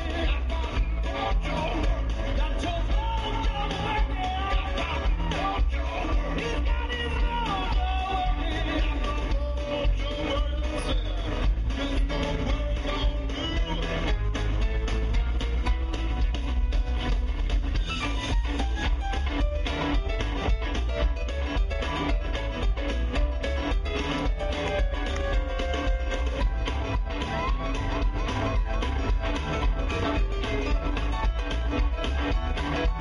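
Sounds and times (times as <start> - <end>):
live rock band playing: 0.0 - 33.0.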